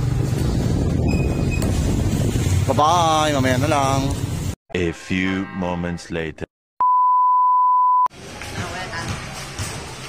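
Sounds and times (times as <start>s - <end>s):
wind noise on microphone: 0.0s - 3.4s
motorcycle engine rumble: 0.0s - 3.5s.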